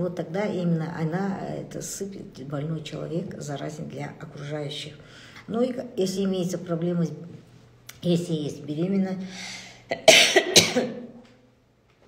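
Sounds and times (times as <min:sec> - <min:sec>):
woman coughing: 0:09.9 - 0:11.2.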